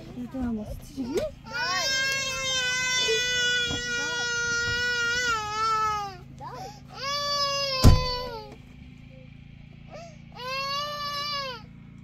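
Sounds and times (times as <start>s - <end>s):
young child crying: 1.5s - 8.6s, 9.9s - 11.7s.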